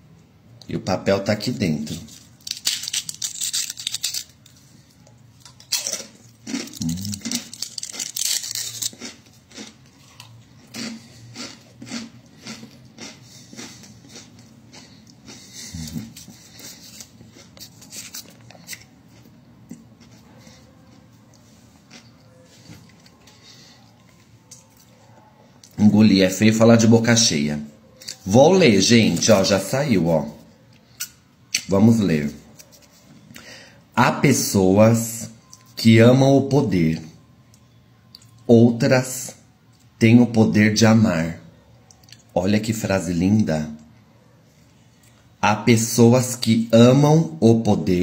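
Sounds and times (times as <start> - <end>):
fortune cookie crunching: 1.4 - 25.9
chewing clicks: 5.4 - 16.3, 41.8 - 42.3.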